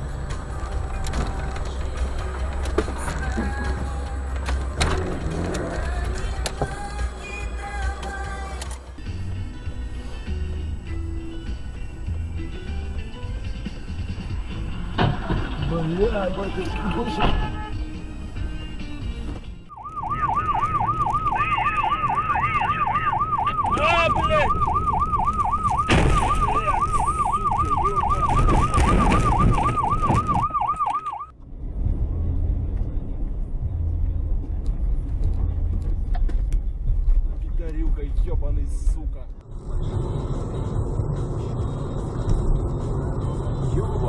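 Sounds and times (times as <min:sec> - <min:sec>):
car engine and road rumble: 0:00.0 - 0:44.0
electronic siren warbling: 0:19.7 - 0:31.3.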